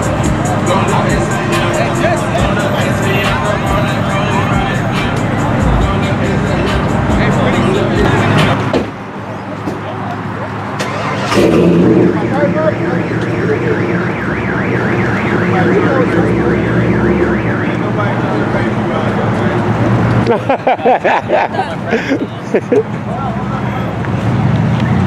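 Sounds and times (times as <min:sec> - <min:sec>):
car alarm warbling: 0:10.9 - 0:19.0.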